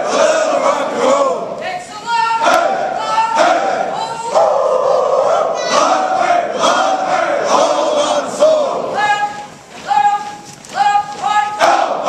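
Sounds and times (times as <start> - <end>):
soldiers chanting in unison: 0.0 - 1.6, 2.4 - 9.0, 11.2 - 12.0.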